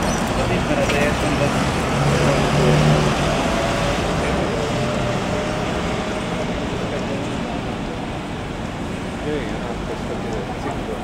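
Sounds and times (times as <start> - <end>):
bus engine humming: 0.0 - 11.0
traffic noise: 0.0 - 11.0.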